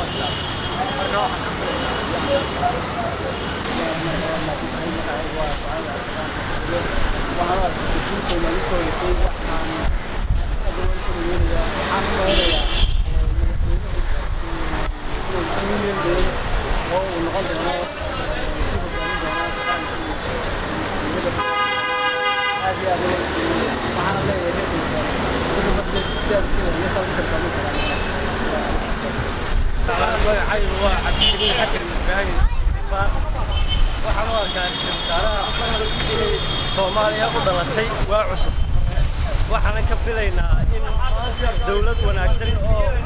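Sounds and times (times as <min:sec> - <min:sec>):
man talking: 0:00.0 - 0:21.5, 0:22.6 - 0:29.2, 0:29.8 - 0:33.4, 0:34.0 - 0:43.0
low rumble of road traffic: 0:00.0 - 0:43.0
street noise: 0:00.0 - 0:43.0
voices: 0:00.0 - 0:43.0
vehicle horn: 0:21.4 - 0:22.8.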